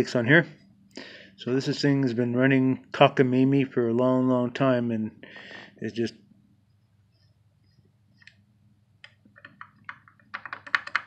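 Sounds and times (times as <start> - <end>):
pump shaft clicking and clacking: 9.4 - 11.0.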